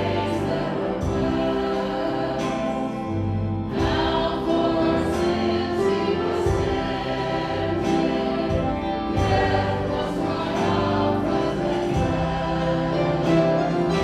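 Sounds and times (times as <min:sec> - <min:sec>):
drum and cymbal beats: 0:00.0 - 0:14.0
group singing together: 0:00.0 - 0:14.0
live band playing: 0:00.0 - 0:14.0.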